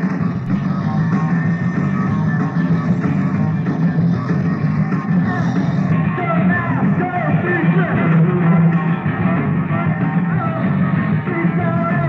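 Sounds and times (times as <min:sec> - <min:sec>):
rock band playing lo-fi: 0:00.0 - 0:12.0.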